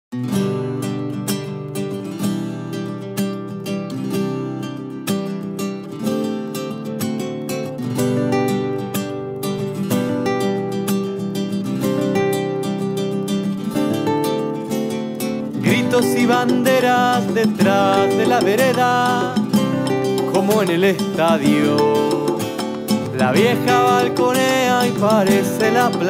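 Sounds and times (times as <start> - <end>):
guitar playing chords: 0.1 - 26.0.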